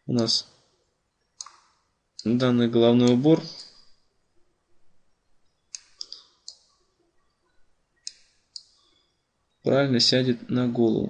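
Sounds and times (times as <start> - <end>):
computer mouse clicking: 1.4 - 2.4.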